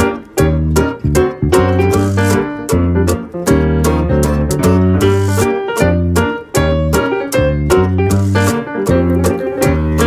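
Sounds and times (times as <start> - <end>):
swing band music with keyboard: 0.0 - 10.0.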